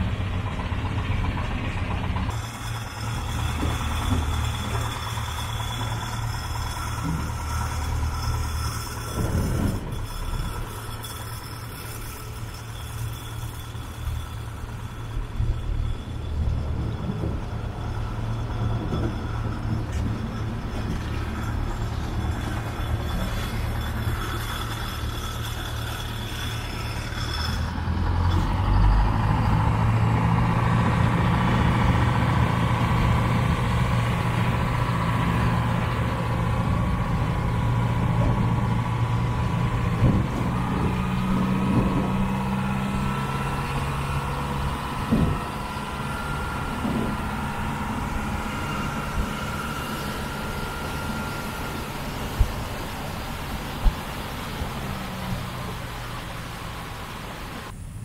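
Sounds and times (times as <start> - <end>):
boat engine running: 0.0 - 58.0.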